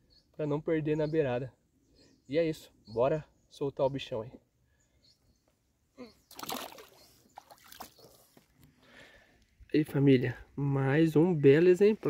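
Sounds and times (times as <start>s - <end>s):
water splashing: 6.3s - 8.2s.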